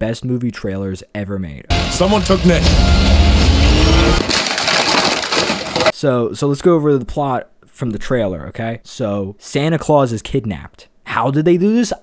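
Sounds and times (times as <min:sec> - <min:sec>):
deep rumble: 0:01.7 - 0:04.3
dense rush of noise: 0:01.7 - 0:05.9.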